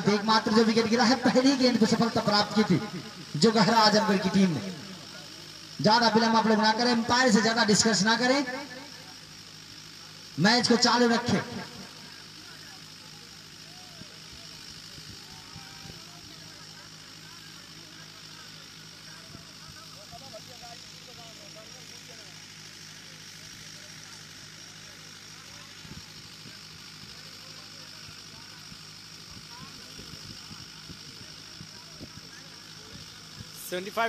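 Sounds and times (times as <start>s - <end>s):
distant chatter of players: 0.0s - 34.0s
steady low hum: 0.0s - 34.0s.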